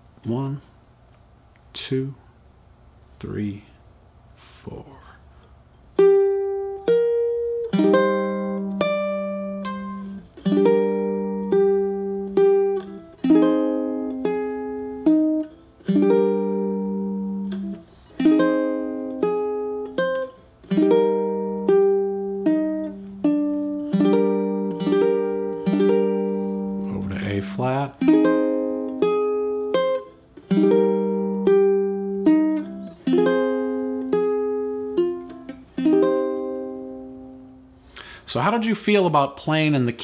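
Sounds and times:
ukulele chord melody: 6.0 - 37.7.

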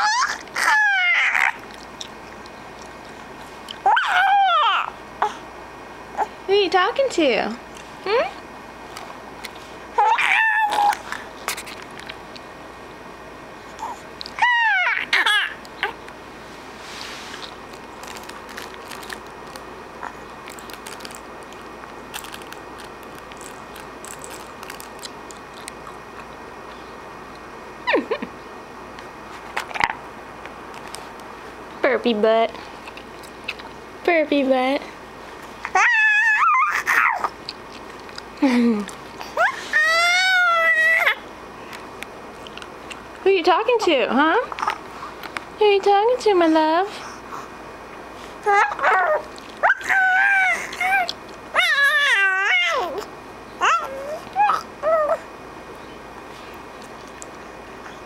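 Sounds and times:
baby squealing: 0.0 - 1.6, 3.8 - 4.9, 10.0 - 11.0, 13.8 - 16.0, 35.7 - 37.3, 39.4 - 41.2, 48.5 - 53.0, 53.6 - 55.2.

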